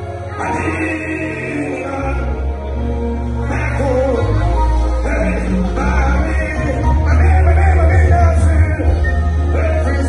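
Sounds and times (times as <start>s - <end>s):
band with electric guitars: 0.0s - 10.0s
gospel singers: 0.0s - 10.0s.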